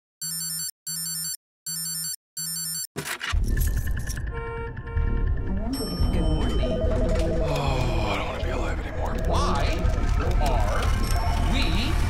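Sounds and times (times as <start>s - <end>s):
electronic alarm beeping: 0.2s - 2.9s
person speaking: 5.7s - 12.0s.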